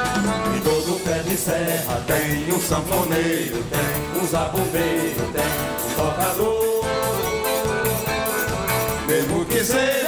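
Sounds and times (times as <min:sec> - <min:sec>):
accordion: 0:00.0 - 0:10.0
bass: 0:00.0 - 0:10.0
drums: 0:00.0 - 0:10.0
guitar: 0:00.0 - 0:10.0.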